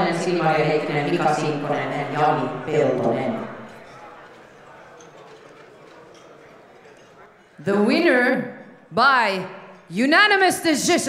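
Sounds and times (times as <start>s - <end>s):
crowd murmur in large hall: 0.0s - 11.0s.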